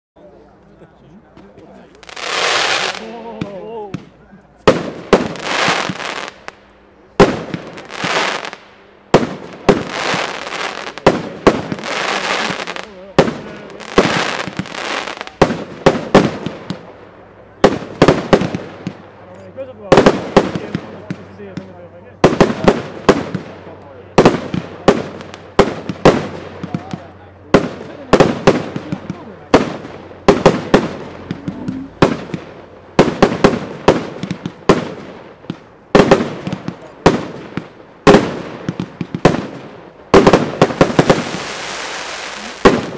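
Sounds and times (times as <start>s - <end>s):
fireworks bangs with hiss: 1.5s - 19.2s, 19.9s - 42.9s.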